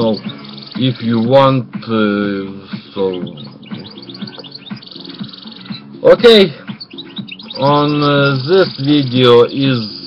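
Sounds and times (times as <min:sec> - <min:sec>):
fast buzzy bird trill: 0:00.0 - 0:01.6, 0:02.6 - 0:10.0
small birds chirping: 0:00.0 - 0:10.0.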